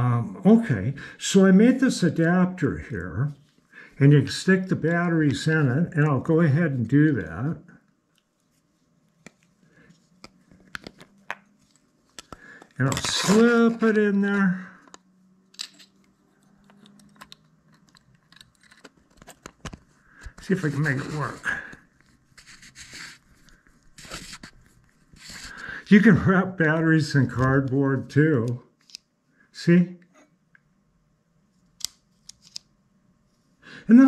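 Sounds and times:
small sharp plastic clicks: 31.8s - 32.7s.

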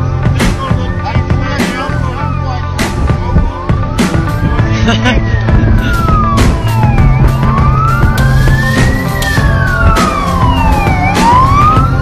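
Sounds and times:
background music: 0.0s - 12.0s
fire engine siren wailing: 3.8s - 12.0s.

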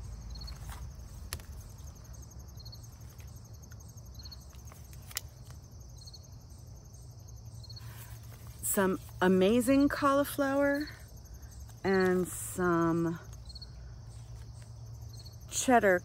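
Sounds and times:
insect chirp: 0.0s - 16.0s
insects trilling: 0.0s - 16.0s.

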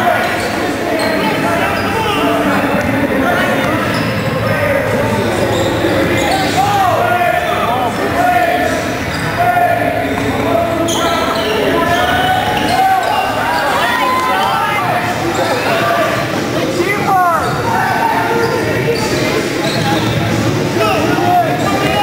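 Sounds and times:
sneakers squeaking: 0.0s - 22.0s
people shouting: 6.2s - 16.1s.

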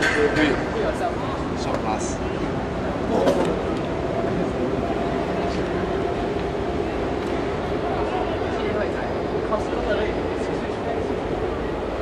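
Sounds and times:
distant voices of players: 0.0s - 12.0s.

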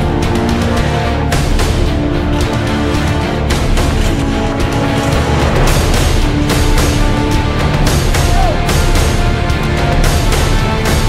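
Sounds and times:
loud driving music with steady beat: 0.0s - 11.0s.

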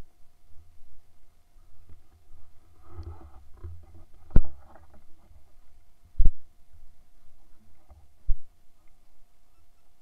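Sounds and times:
microphone handling noise: 1.8s - 8.5s.

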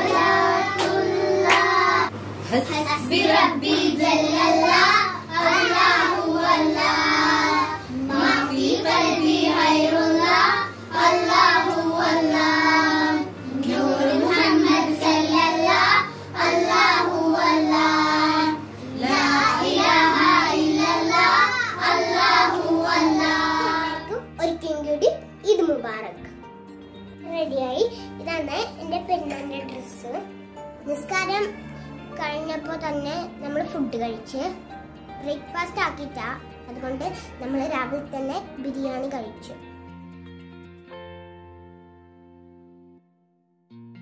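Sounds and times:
girls singing together: 0.0s - 2.1s, 3.0s - 24.1s.

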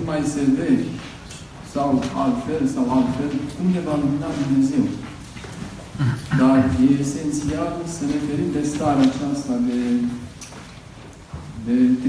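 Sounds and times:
man speaking through microphone: 0.0s - 5.2s, 6.0s - 10.4s, 11.6s - 12.0s.

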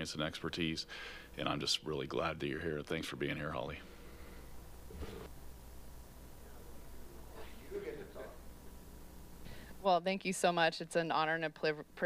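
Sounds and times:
low steady sound system hum: 0.0s - 12.0s.

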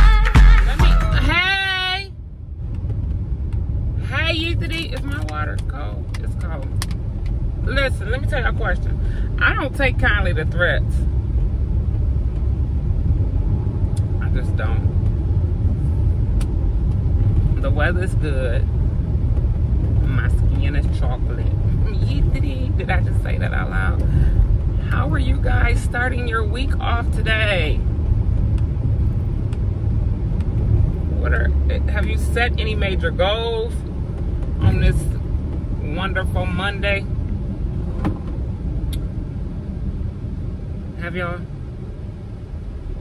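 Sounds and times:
car cabin rumble: 0.0s - 43.0s
person talking: 0.6s - 2.1s, 4.0s - 6.8s, 20.0s - 24.1s, 24.8s - 27.8s, 31.2s - 33.8s, 34.6s - 35.2s.

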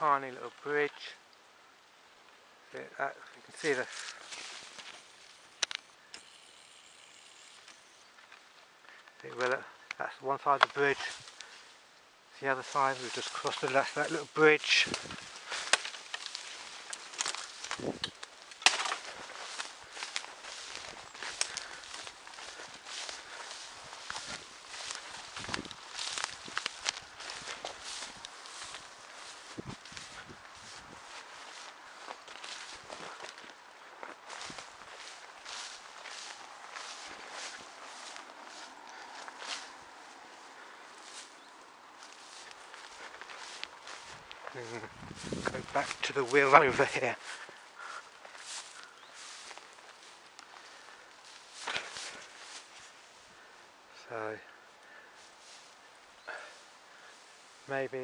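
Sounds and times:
footsteps on rough ground: 2.8s - 58.0s.

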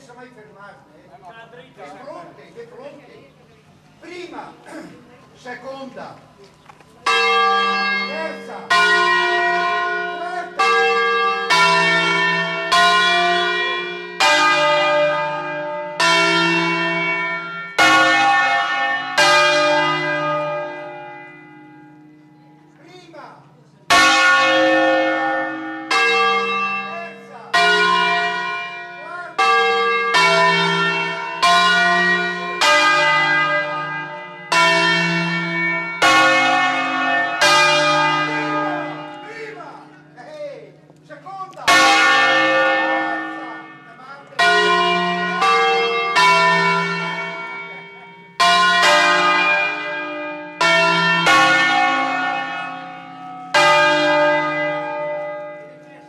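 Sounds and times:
church bells ringing: 0.0s - 6.2s, 7.0s - 56.0s.

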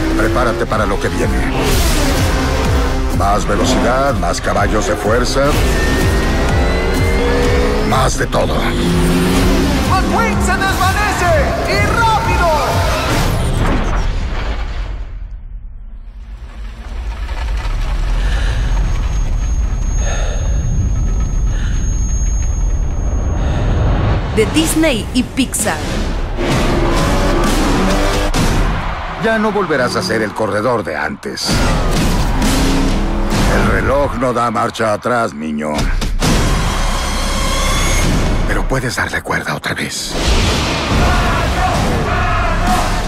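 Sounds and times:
deep rumble: 14.2s - 29.1s
faint high ringing tone: 19.0s - 23.6s
trailer hit: 22.7s - 30.8s, 40.1s - 43.0s
crash bursts: 25.6s - 30.6s, 31.4s - 34.7s, 40.1s - 43.0s.

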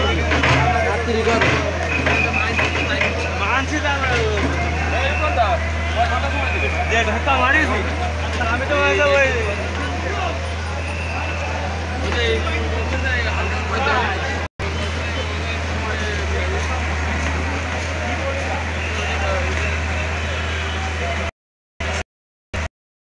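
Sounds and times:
crowd chatter: 0.0s - 22.0s
diesel engine low drone: 0.0s - 22.0s.

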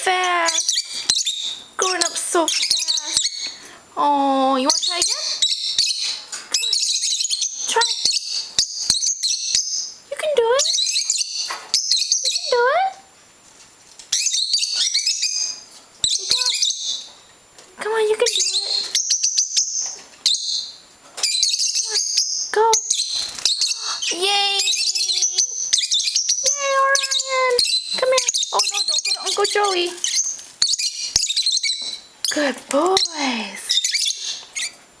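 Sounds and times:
lovebirds chirping: 0.0s - 13.1s, 14.0s - 35.0s.

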